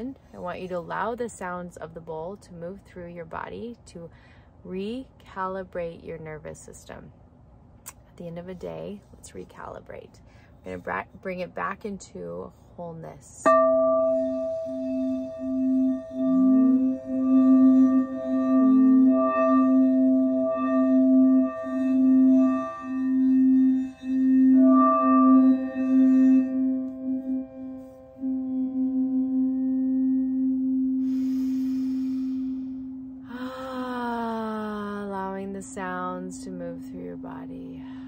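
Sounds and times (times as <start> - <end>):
singing bowl ringing: 13.4 - 38.0.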